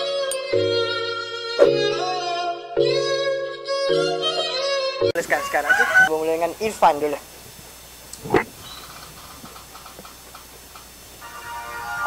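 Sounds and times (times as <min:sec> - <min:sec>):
musical tone: 0:11.2 - 0:12.0.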